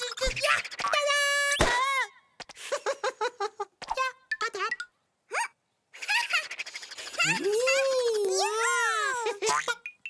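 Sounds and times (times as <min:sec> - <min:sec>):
high chirpy vocal sounds: 0:06.2 - 0:09.4.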